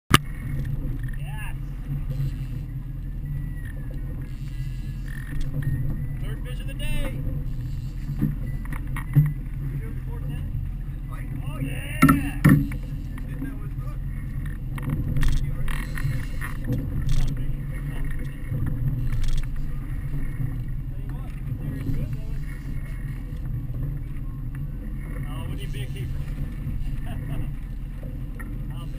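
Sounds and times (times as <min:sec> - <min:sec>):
outboard motors rumbling: 0:00.1 - 0:28.9
water and hull noise: 0:00.1 - 0:28.9.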